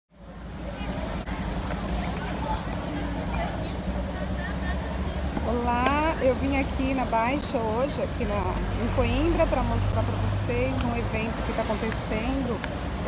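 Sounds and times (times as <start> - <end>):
low traffic rumble: 0.1 - 13.0
voices of passers-by: 0.1 - 13.0
woman speaking close by: 5.4 - 12.6.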